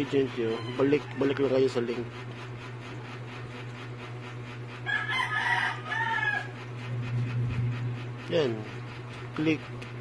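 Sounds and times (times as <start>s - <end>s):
rooster crowing: 0.3s - 1.7s, 4.8s - 6.7s.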